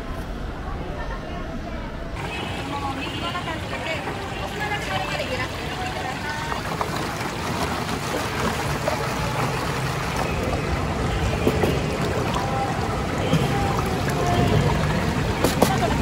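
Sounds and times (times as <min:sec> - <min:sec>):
water running through trough: 0:02.2 - 0:16.0.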